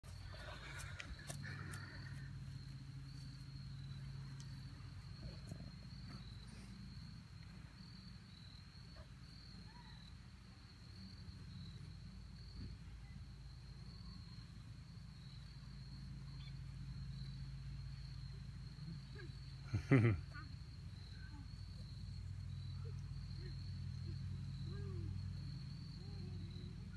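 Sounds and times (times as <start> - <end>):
insects droning: 0.0 - 26.9
person laughing: 19.7 - 20.4.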